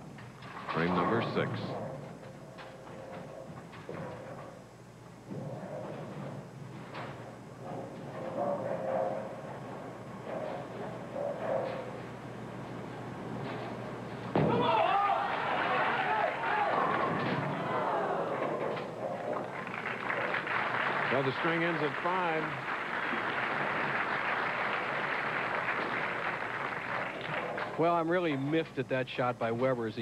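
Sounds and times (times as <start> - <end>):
bowling ball rolling down lane: 0.1 - 28.5
bowling pins crashing: 13.3 - 27.8
crowd reacting loudly: 14.5 - 18.5.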